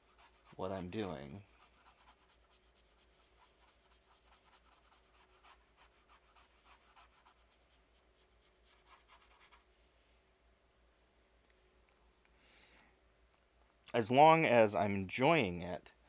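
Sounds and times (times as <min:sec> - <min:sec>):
paintbrush scratchy strokes: 0:00.0 - 0:09.7.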